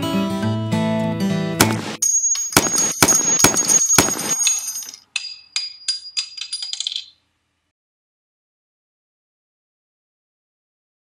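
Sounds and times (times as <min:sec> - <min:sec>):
brass casings tinkling: 0:02.0 - 0:07.2
gunshots with ringing tail: 0:02.6 - 0:04.5.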